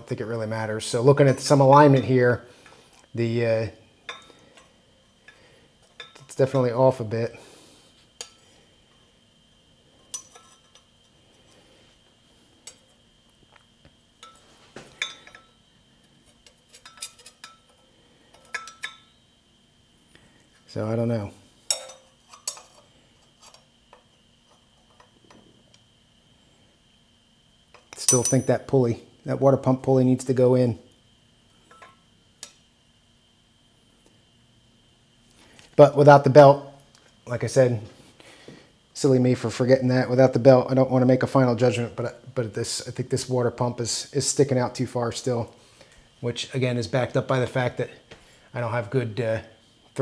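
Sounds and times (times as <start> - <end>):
metal parts clinking and tapping: 10.1 - 10.9, 16.3 - 19.1, 21.7 - 22.8, 27.7 - 28.6, 31.7 - 32.6.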